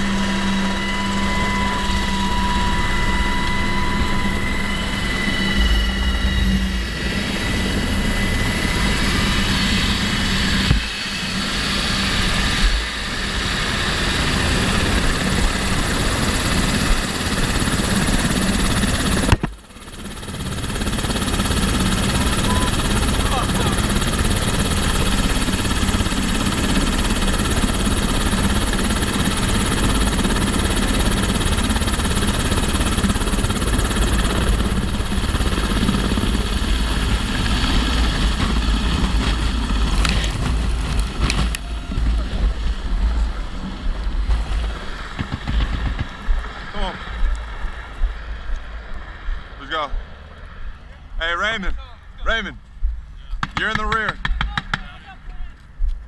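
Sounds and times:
high whining tones: 0:00.0 - 0:44.3
helicopter rotor and engine: 0:00.0 - 0:56.0.

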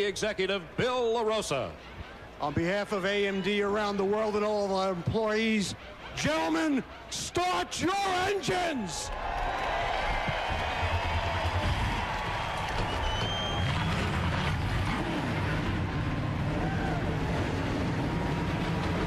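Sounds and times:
crowd cheering: 0:00.0 - 0:19.0
car engines idling: 0:11.6 - 0:19.0.

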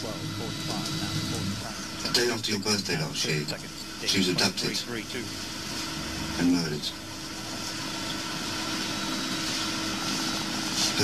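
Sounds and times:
low hum: 0:00.0 - 0:10.8
tape hiss: 0:00.0 - 0:11.0.

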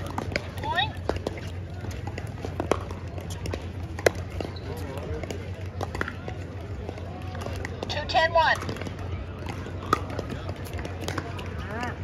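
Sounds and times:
low murmur of voices: 0:00.0 - 0:12.0.

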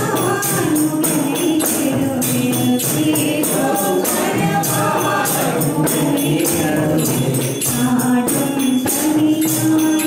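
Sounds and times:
group singing devotional song: 0:00.0 - 0:10.0
tambourine beating with jingles: 0:00.0 - 0:10.0.

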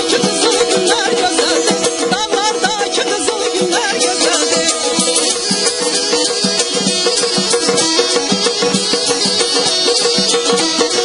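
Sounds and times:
saz folk instrumental: 0:00.0 - 0:11.0
steady percussive beat: 0:00.0 - 0:11.0.

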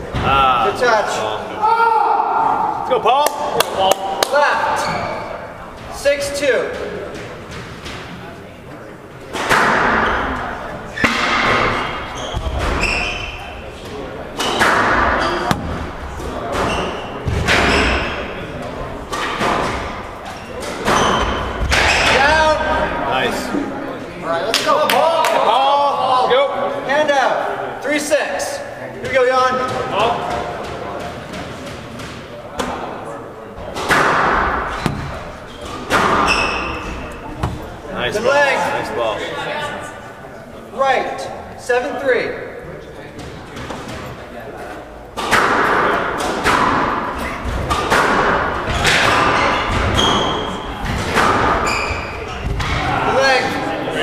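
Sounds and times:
squash ball cracking off rackets and walls: 0:13.8 - 0:22.2, 0:33.6 - 0:37.9, 0:45.2 - 0:52.9.

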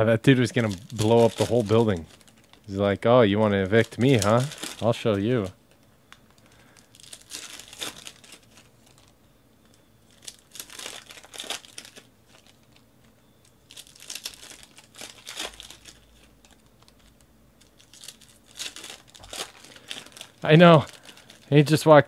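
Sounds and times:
foil wrappers crinkling and tearing: 0:00.3 - 0:21.9.

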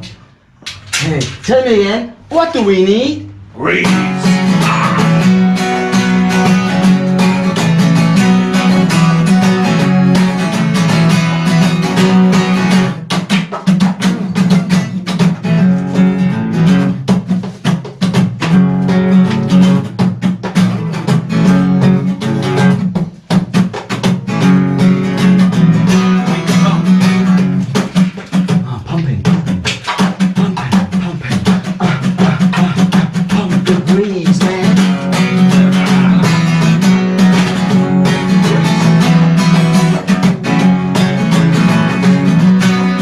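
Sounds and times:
acoustic guitar strumming: 0:03.3 - 0:43.0.

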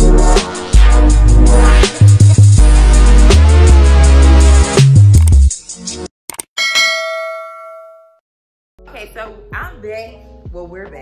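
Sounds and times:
bell chime ding: 0:06.6 - 0:08.2.

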